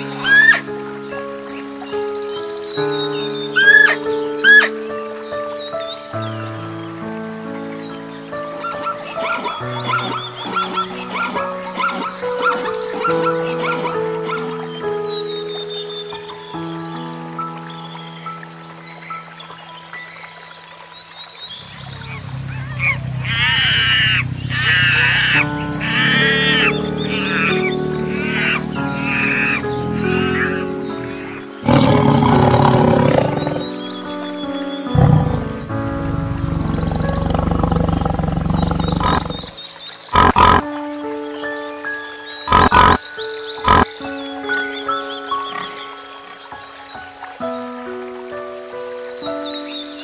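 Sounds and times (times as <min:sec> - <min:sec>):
high arching animal calls: 0:00.0 - 0:00.7, 0:01.5 - 0:04.8, 0:08.4 - 0:16.4, 0:21.5 - 0:40.7, 0:42.4 - 0:46.2
background music: 0:00.0 - 0:50.0
tiger growling and roaring: 0:21.6 - 0:34.0, 0:34.9 - 0:40.6.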